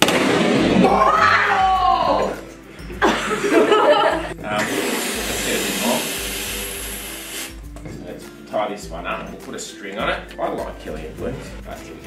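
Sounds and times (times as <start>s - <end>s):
helium hissing into balloon: 4.5s - 7.7s.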